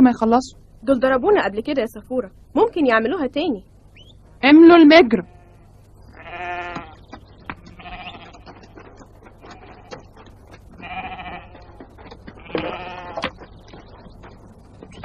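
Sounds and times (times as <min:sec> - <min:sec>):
sheep bleating: 0:04.9 - 0:10.1, 0:10.7 - 0:13.4.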